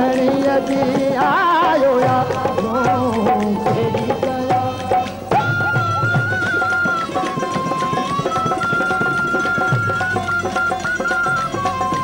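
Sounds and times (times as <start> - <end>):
hand percussion beat: 0.0 - 12.0.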